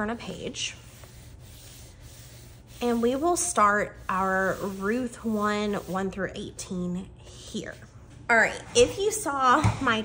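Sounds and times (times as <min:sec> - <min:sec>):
hand rubbing paper pages: 0:00.8 - 0:06.1.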